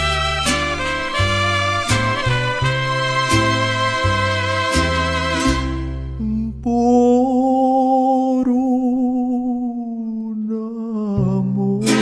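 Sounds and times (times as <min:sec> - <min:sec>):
loud brass: 0:00.0 - 0:06.1
held melody notes with vibrato: 0:00.0 - 0:06.4
low bass notes: 0:00.0 - 0:10.4, 0:11.1 - 0:12.0.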